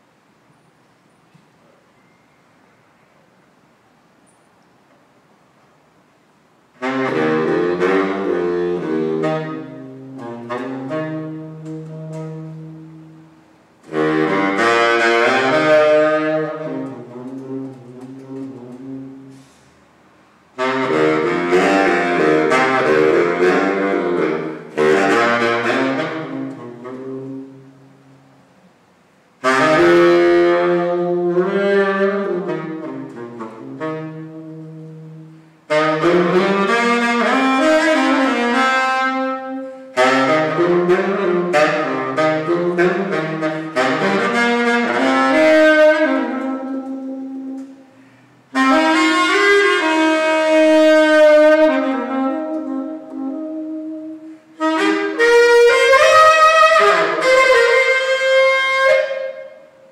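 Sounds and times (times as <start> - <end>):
baritone saxophone solo: 6.2 - 59.9.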